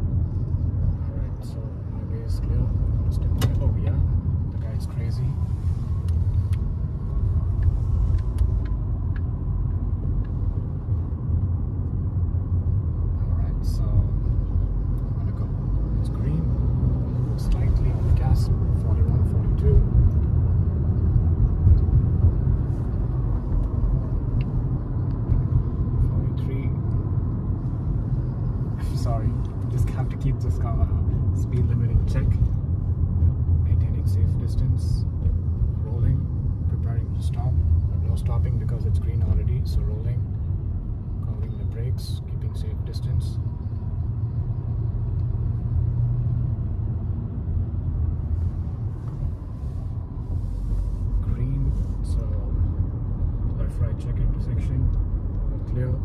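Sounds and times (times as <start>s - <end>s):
car cabin road rumble: 0.0s - 56.0s.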